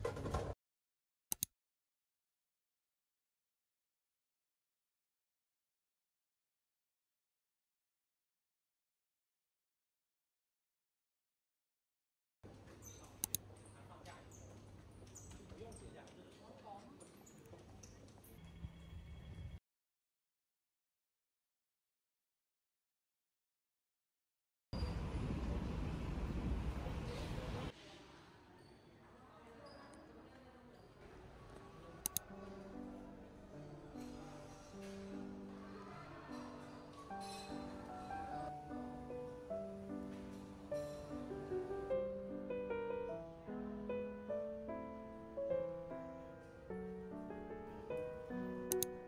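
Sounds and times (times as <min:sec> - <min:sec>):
sharp clicks: 0:01.3 - 0:01.5, 0:13.2 - 0:13.4, 0:32.0 - 0:32.3, 0:48.7 - 0:49.0
loud street traffic: 0:24.9 - 0:27.7
gentle keyboard music: 0:32.0 - 0:49.0
double click: 0:48.7 - 0:48.9.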